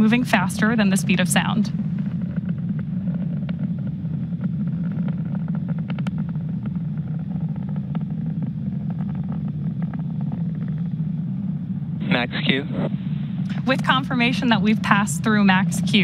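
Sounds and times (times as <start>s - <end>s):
faint crackles: 0.0s - 16.0s
rocket engines rumbling: 0.0s - 16.0s.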